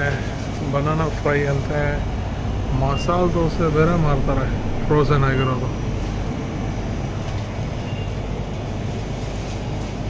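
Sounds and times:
freezer cabinets humming: 0:00.0 - 0:10.0.

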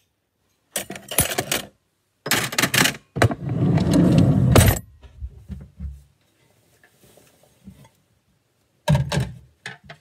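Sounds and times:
metal utensils clattering in drawer: 0:00.8 - 0:01.7.

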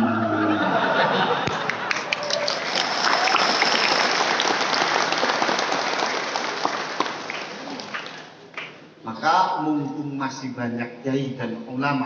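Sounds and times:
audience applause: 0:00.7 - 0:08.6.

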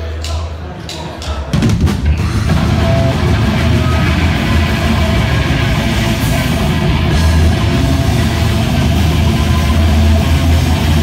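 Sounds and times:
heavy rock band playing: 0:01.5 - 0:11.0.

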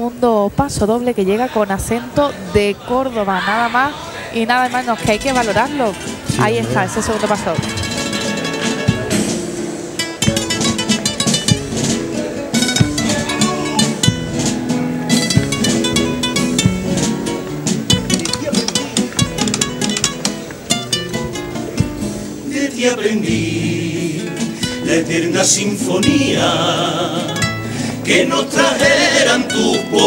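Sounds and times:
choir singing: 0:01.3 - 0:09.3, 0:22.4 - 0:30.0
guitars strumming rapidly: 0:04.9 - 0:30.0
drum hits: 0:05.0 - 0:20.4, 0:21.2 - 0:22.2.

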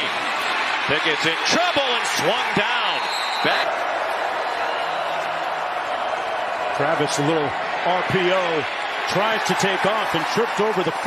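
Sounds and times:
stadium crowd noise: 0:00.0 - 0:11.0
commentator speaking: 0:00.9 - 0:03.7, 0:06.8 - 0:11.0.

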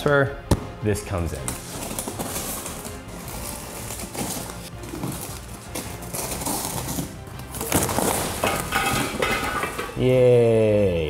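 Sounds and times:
background music: 0:00.0 - 0:11.0
cardboard scraping: 0:01.4 - 0:08.7
blade slitting cardboard box: 0:01.6 - 0:08.4
cardboard flaps tearing: 0:01.6 - 0:08.4
plastic wrap crinkling: 0:01.6 - 0:08.8.

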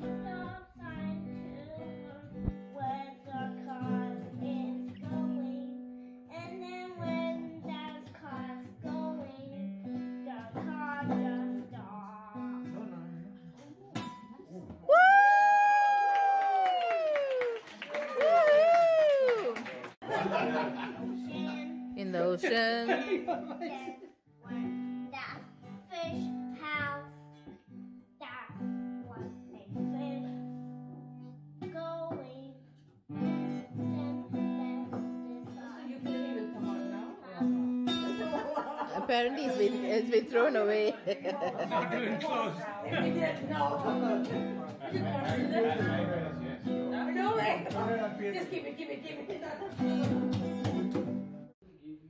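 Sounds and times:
child singing: 0:00.0 - 0:12.8, 0:31.6 - 0:32.6, 0:33.2 - 0:36.9
acoustic guitar strumming: 0:20.3 - 0:23.8, 0:33.1 - 0:41.0, 0:41.6 - 0:48.4, 0:49.7 - 0:51.5.

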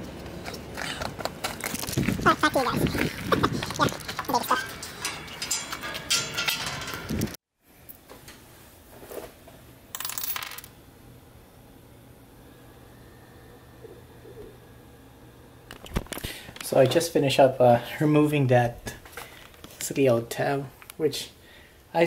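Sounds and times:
low room hum: 0:00.0 - 0:22.0
clattering handling noise: 0:03.2 - 0:07.4
metal rings clinking on wood: 0:03.8 - 0:07.3, 0:09.9 - 0:10.7.

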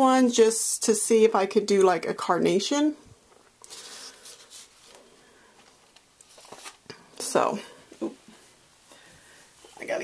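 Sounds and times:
paper liner rustling: 0:03.7 - 0:05.0, 0:05.6 - 0:06.9.

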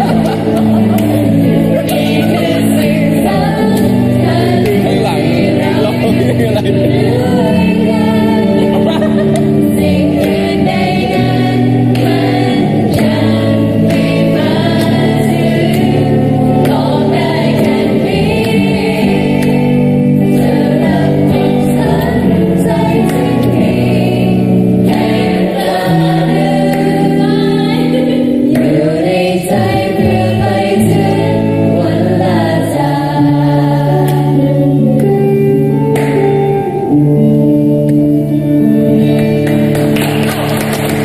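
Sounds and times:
electric guitar: 0:00.0 - 0:41.0
young voices singing in chorus: 0:00.0 - 0:41.0.

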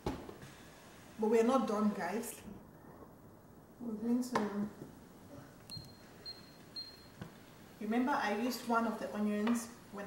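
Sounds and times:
woman's voice: 0:07.8 - 0:10.0.

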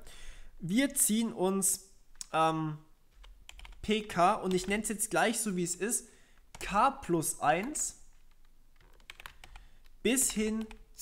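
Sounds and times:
keystrokes on computer keyboard: 0:03.1 - 0:03.8, 0:07.6 - 0:10.9.

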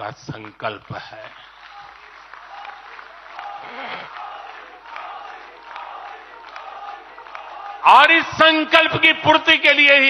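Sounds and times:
audience applauding: 0:00.0 - 0:09.8.

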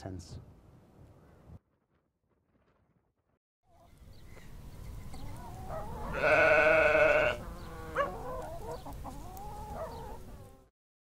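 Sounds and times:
sheep bleating: 0:06.1 - 0:07.4.

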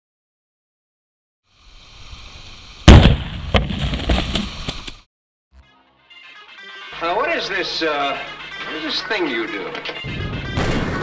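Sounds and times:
explosion blast with rumble: 0:02.9 - 0:04.1, 0:10.1 - 0:11.0
sharp cracks: 0:02.9 - 0:05.0.

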